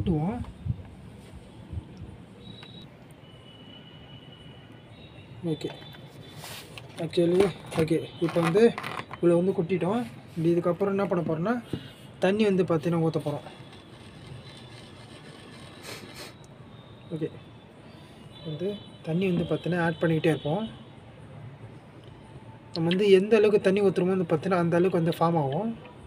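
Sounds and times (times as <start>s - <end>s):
soft rustles of powder: 6.2s - 6.8s.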